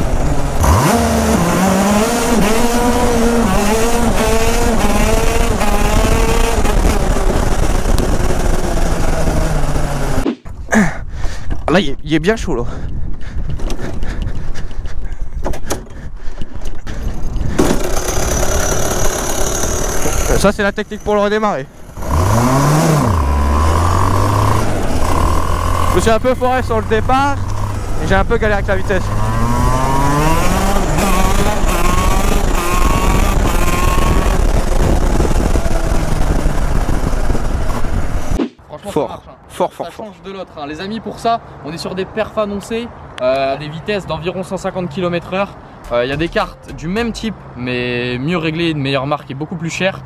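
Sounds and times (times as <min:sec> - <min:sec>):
kart engine starting and running: 0:00.0 - 0:10.3, 0:16.8 - 0:38.6
wind noise on microphone: 0:00.0 - 0:20.5, 0:21.8 - 0:38.4
engine knocks: 0:15.4 - 0:20.9.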